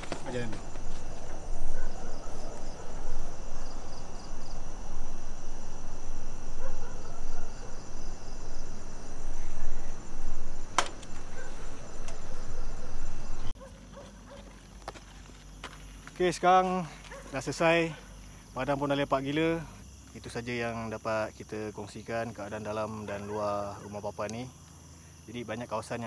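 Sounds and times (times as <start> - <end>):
footsteps: 0.0 - 2.7, 13.5 - 17.5
night insects chirring: 0.0 - 26.0
sharp click: 10.7 - 11.2.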